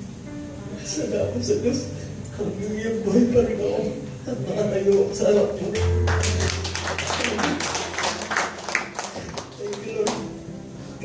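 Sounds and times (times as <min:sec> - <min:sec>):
people clapping: 0:05.8 - 0:10.4.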